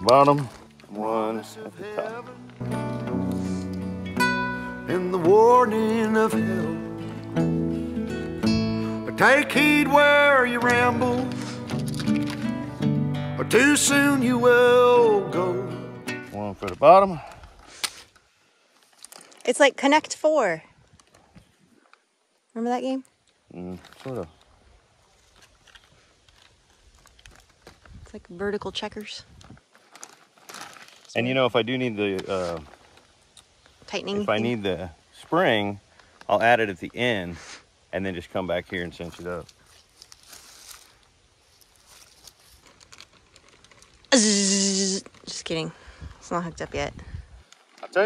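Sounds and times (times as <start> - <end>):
plastic bag rustling: 9.3 - 12.8, 18.7 - 19.5, 23.8 - 28.2, 29.0 - 33.8, 39.0 - 44.2, 44.8 - 45.7.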